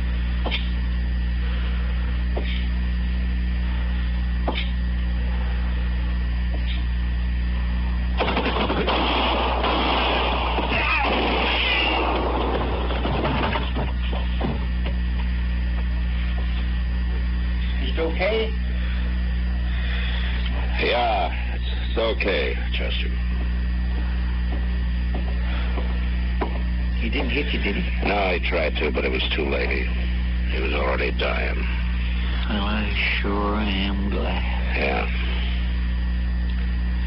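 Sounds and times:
recording hum: 0.0 - 37.0
burst of gunfire: 8.2 - 13.6
slow footsteps: 13.5 - 17.3, 23.3 - 26.9.

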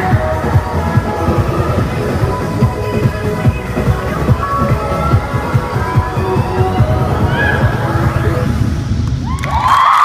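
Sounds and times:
dance music with heavy beat: 0.0 - 9.4
girls screaming and cheering: 4.9 - 8.5, 9.2 - 10.0.

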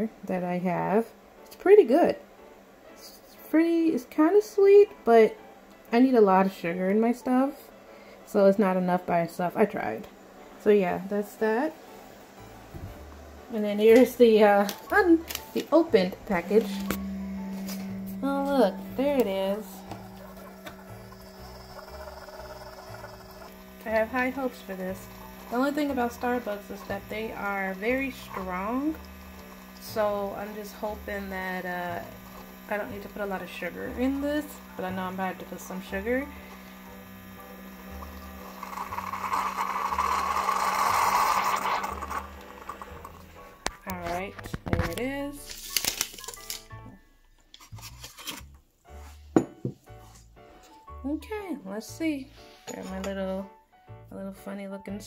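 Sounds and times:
background music: 0.0 - 55.0
coffee maker humming: 10.6 - 45.1
coffee pouring into a mug: 19.8 - 33.4, 36.4 - 43.3.

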